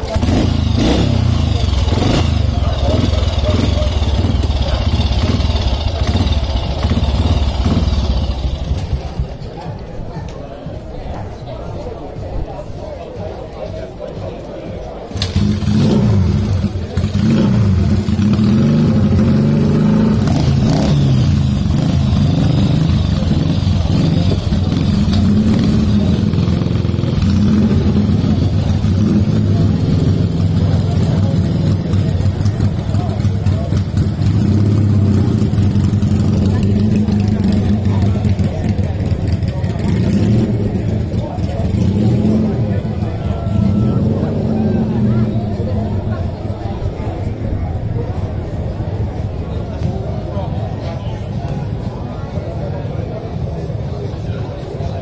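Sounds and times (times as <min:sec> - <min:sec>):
motorcycle engine idling: 0:00.0 - 0:09.6, 0:15.1 - 0:44.4.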